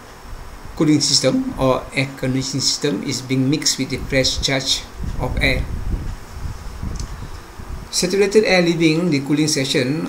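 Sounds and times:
low rumble of background noise: 0.0 - 10.0.

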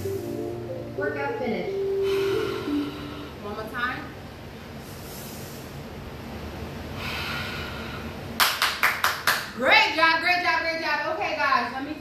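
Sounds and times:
quick handclaps: 8.4 - 9.5.

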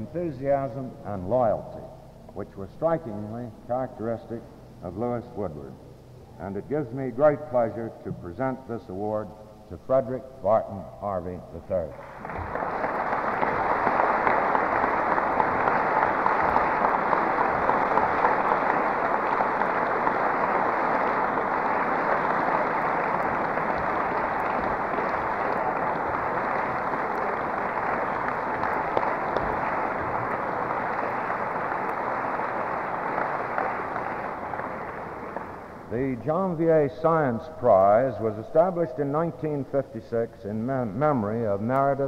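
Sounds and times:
audience applauding: 12.0 - 36.0.

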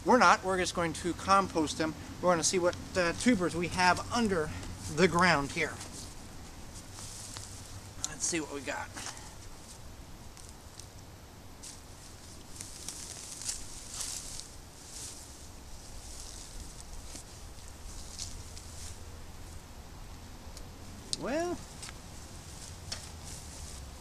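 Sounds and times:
leafy vines rustling: 0.0 - 19.8, 20.6 - 24.0
soil scraping: 2.9 - 10.9, 11.6 - 19.0.

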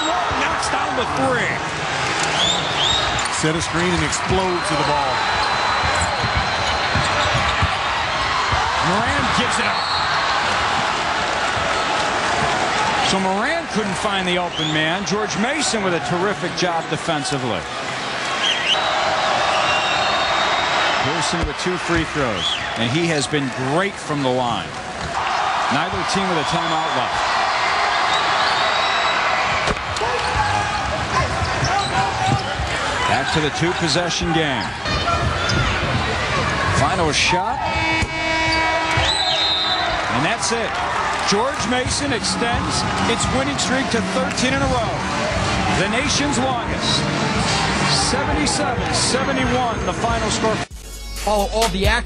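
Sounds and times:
arena crowd noise: 0.0 - 50.7
basketball bouncing on court: 3.9 - 9.4, 34.8 - 36.8, 41.6 - 43.5.

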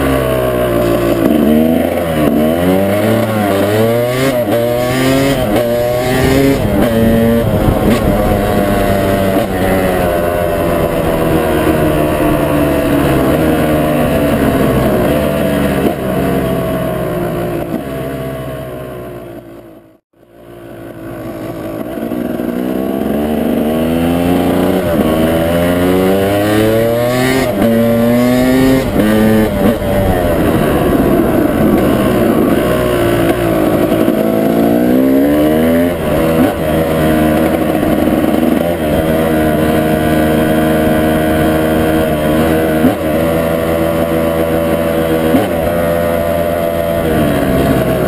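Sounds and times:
two-stroke motorcycle engine running: 0.0 - 48.0.

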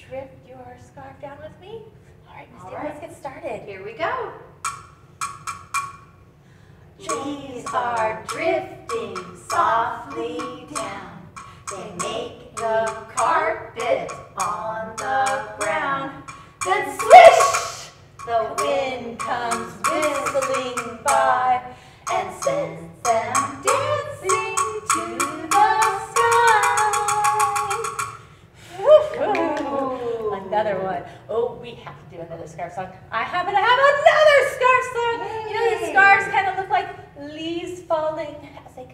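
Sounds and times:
steady rhythmic beat: 4.5 - 6.4, 7.0 - 28.3
loud breathy burst: 6.3 - 7.0, 11.4 - 11.7, 21.7 - 22.1
women singing children's song: 7.0 - 31.6, 33.1 - 38.9.

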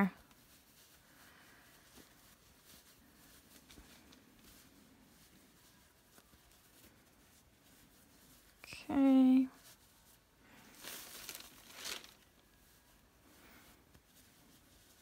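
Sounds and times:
stuffing rustling: 0.1 - 15.0.

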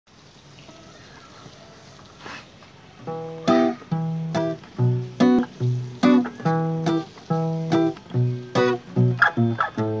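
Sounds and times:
faint hiss: 0.1 - 10.0
soft guitar string tones: 3.1 - 10.0.

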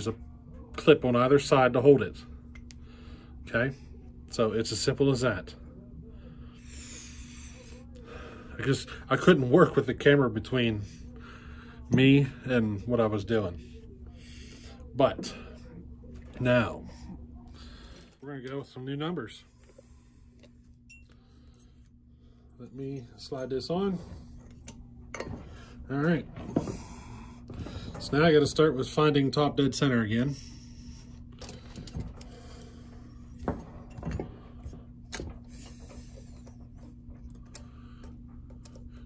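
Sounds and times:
steady low hum: 0.0 - 39.0
clicks and knocks handling metal: 24.4 - 25.6.

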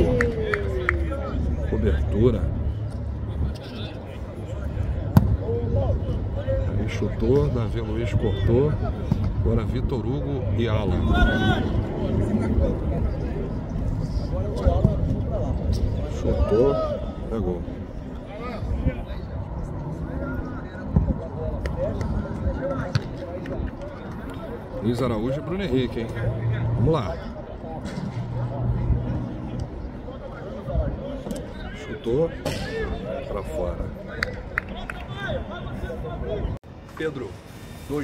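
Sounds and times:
distant voices: 0.0 - 38.0.

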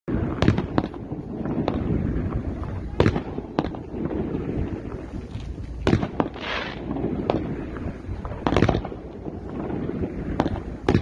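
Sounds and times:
fireworks bangs: 0.1 - 11.0
low rumble: 0.1 - 11.0.

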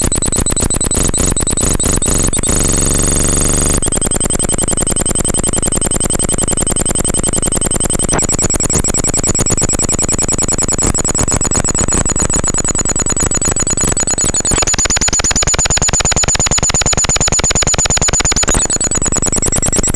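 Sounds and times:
electronic buzzing pulse: 0.0 - 19.9.

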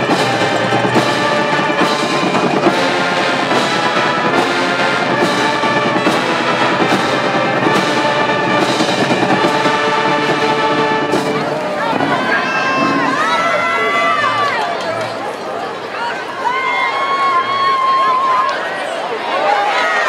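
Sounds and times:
steady drum beat: 0.0 - 14.2
brass band playing: 0.0 - 14.6.

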